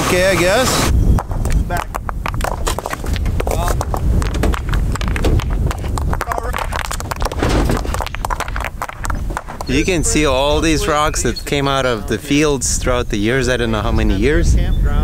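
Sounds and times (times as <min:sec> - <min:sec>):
rocks clacking on truck bed: 0:01.2 - 0:09.8.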